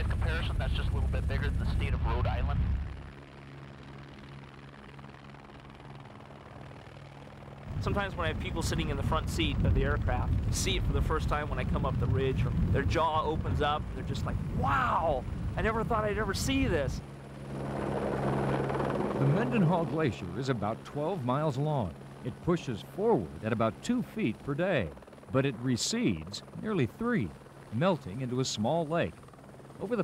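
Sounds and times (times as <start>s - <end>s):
helicopter flying: 0.0s - 30.0s.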